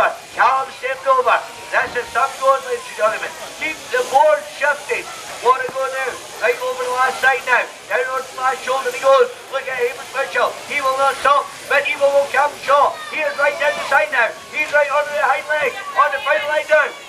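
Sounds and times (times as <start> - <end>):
person shouting: 12.8 - 14.4.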